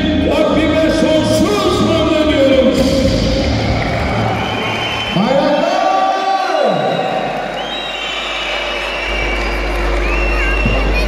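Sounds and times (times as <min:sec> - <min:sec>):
crowd talking and calling out: 0:08.4 - 0:11.0.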